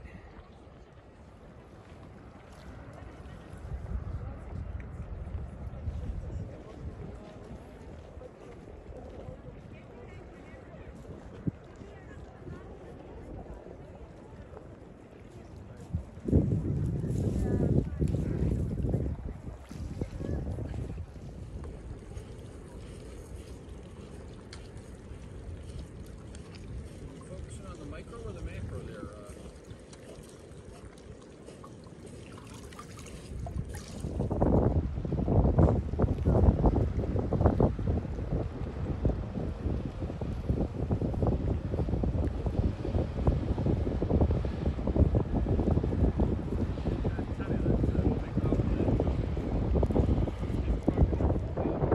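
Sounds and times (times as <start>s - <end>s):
wind buffeting microphone: 0.0s - 51.9s.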